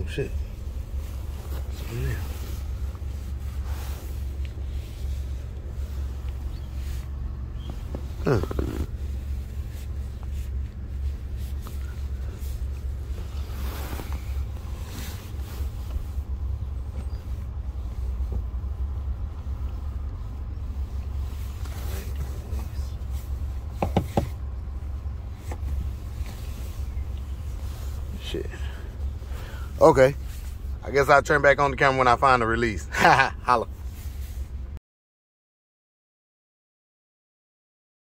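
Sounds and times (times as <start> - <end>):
truck engine idling: 0.0 - 34.8
knocks and rustles: 23.6 - 24.6.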